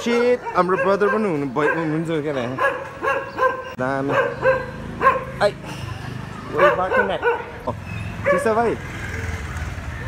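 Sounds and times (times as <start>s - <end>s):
dog barking: 0.1s - 5.5s, 6.5s - 7.6s, 8.2s - 8.6s.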